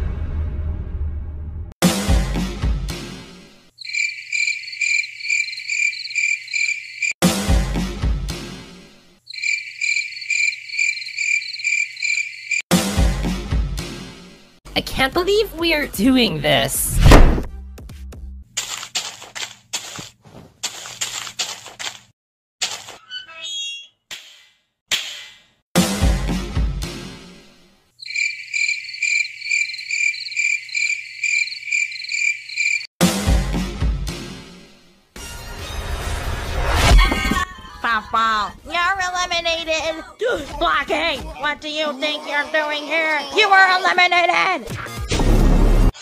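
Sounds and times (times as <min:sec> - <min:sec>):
music: 0:00.0 - 0:03.6, 0:07.2 - 0:09.0, 0:12.7 - 0:16.7, 0:17.4 - 0:18.5, 0:25.8 - 0:27.6, 0:33.0 - 0:36.6, 0:44.6 - 0:46.0
crickets chirping: 0:03.8 - 0:07.2, 0:09.3 - 0:12.6, 0:28.0 - 0:32.9.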